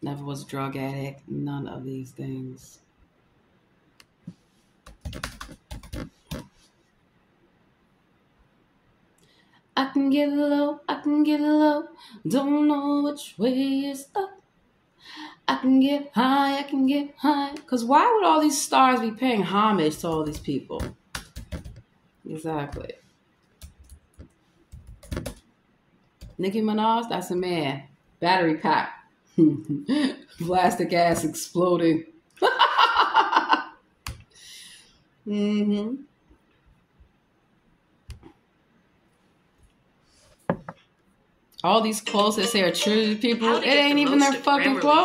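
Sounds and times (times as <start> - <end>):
laptop keyboard typing: 4.8 - 6.5, 20.0 - 21.8, 23.6 - 25.4.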